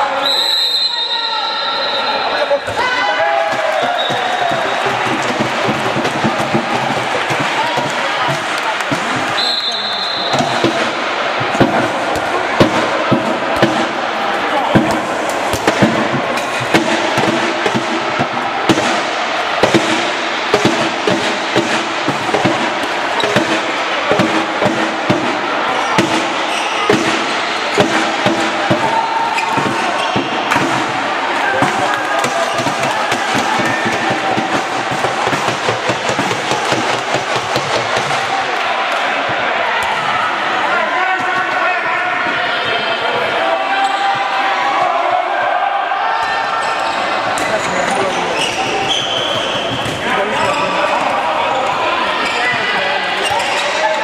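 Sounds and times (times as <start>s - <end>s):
crowd voices: 0.0s - 54.0s
referee's whistle: 0.2s - 2.5s, 3.8s - 4.8s, 9.3s - 10.6s, 48.4s - 50.7s
ball bouncing on court: 3.4s - 14.0s, 14.6s - 31.0s, 31.6s - 38.2s.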